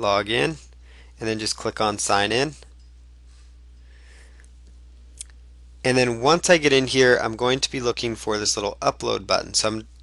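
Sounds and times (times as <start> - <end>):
man speaking: 0.0 - 2.7, 5.8 - 10.0
steady low hum: 0.0 - 10.0.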